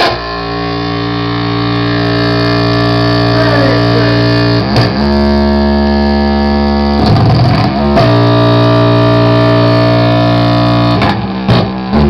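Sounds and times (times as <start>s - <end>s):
distorted noise music drone: 0.0s - 12.0s.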